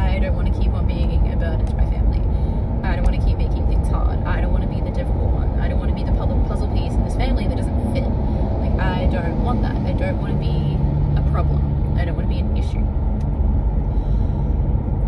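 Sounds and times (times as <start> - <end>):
car cabin road and engine noise: 0.0 - 15.0.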